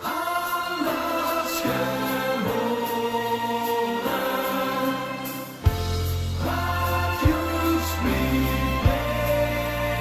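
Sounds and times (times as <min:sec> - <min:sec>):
group singing over backing music: 0:00.0 - 0:10.0.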